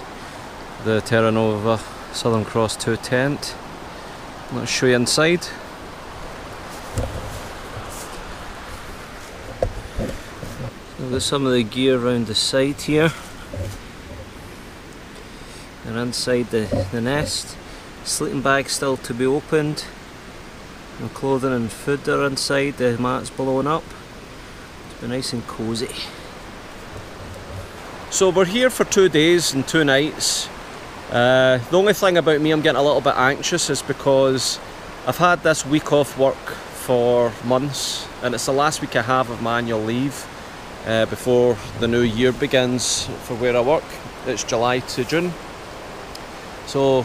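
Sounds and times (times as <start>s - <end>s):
steady background hiss: 0.0s - 47.0s
steady rushing noise: 3.7s - 18.4s, 25.0s - 28.5s
tent fabric rustling: 6.4s - 11.4s
footsteps through grass: 6.6s - 11.4s
dull thump: 6.9s - 7.9s, 9.5s - 11.3s, 16.7s - 17.4s.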